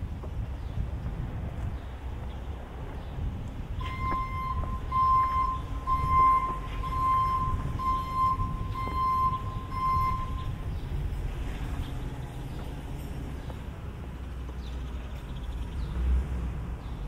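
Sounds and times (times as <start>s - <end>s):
low street rumble: 0.0s - 17.0s
electronic beeper beeping: 3.8s - 10.6s.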